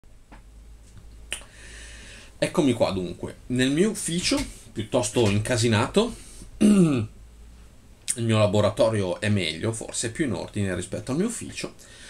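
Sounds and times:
soft hiss: 0:00.1 - 0:12.0.

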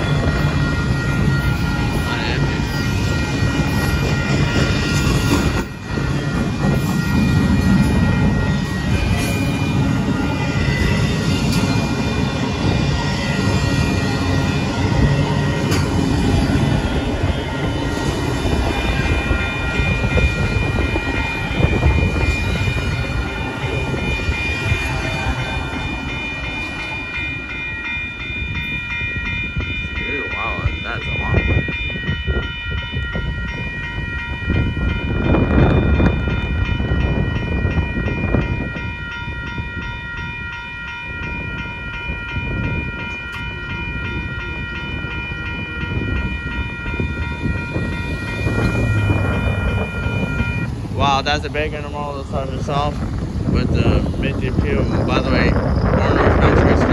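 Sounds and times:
freight train rumble and clatter: 0:00.0 - 0:56.9
railroad crossing bell ringing: 0:00.0 - 0:56.9.

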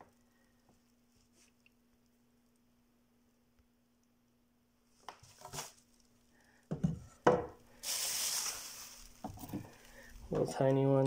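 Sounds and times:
bubble wrap rustling: 0:04.9 - 0:06.3, 0:07.8 - 0:10.3.

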